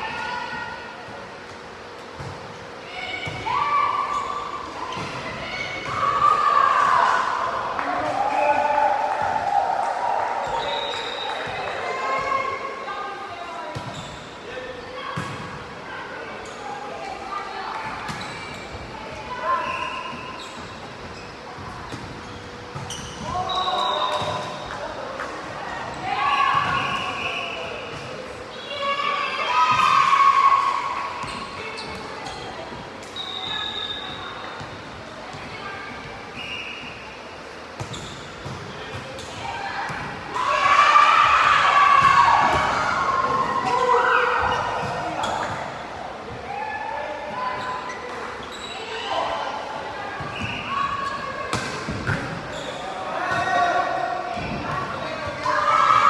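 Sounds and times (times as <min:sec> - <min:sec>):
players shouting calls: 0:02.7 - 0:13.3, 0:39.4 - 0:56.0.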